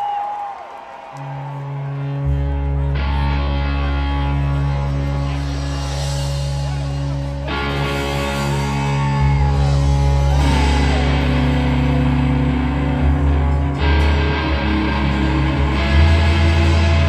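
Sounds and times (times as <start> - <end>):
electric guitar sliding notes: 1.7 - 17.0
heavy bass: 1.8 - 17.0
drums: 3.0 - 17.0.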